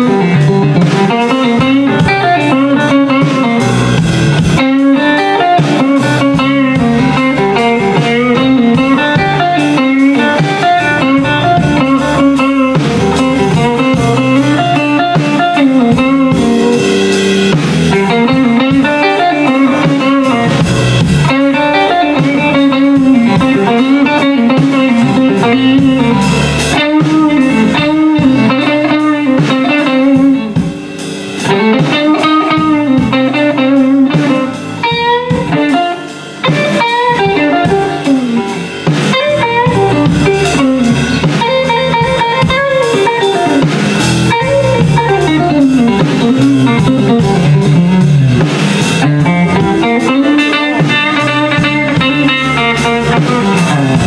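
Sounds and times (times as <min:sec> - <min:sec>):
bass and drums: 0:00.0 - 0:54.0
electric guitar blues solo: 0:00.0 - 0:54.0.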